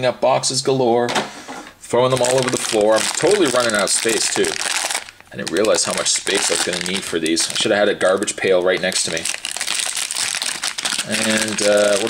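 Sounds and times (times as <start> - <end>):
foil pouch crinkling: 2.1 - 12.0.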